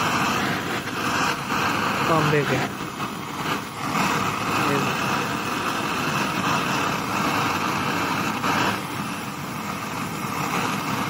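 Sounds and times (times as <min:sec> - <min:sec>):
blowtorch flame hissing: 0:00.0 - 0:11.0.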